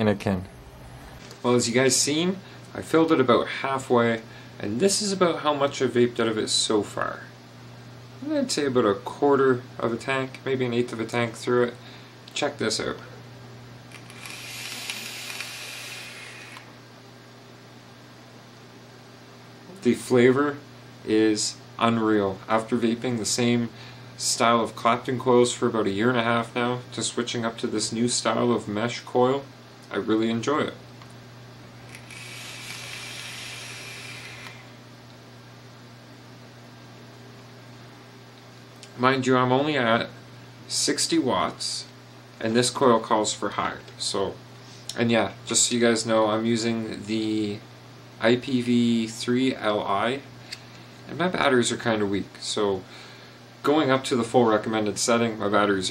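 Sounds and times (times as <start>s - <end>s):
steady low hum: 0.0s - 55.9s
vape hissing: 13.9s - 16.7s, 31.9s - 34.7s.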